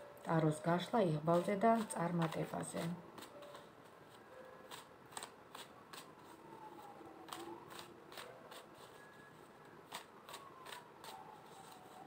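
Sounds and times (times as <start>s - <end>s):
cards being shuffled: 1.3s - 6.4s, 7.2s - 9.0s.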